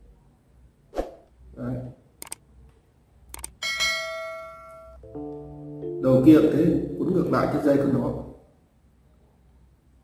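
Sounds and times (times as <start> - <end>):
mouse clicks: 2.2 - 2.4, 3.3 - 3.6
bright bell ding: 3.6 - 5.0.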